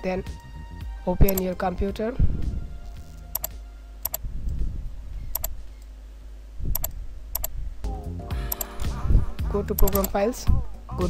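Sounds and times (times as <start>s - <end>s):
low steady hum: 0.0s - 11.0s
mouse double clicks: 5.3s - 5.9s, 6.7s - 7.5s, 9.8s - 10.2s.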